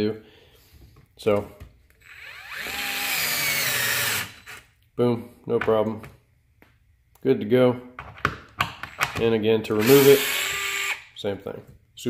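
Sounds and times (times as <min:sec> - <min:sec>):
cordless screwdriver whine: 0:02.0 - 0:04.6, 0:09.8 - 0:11.0.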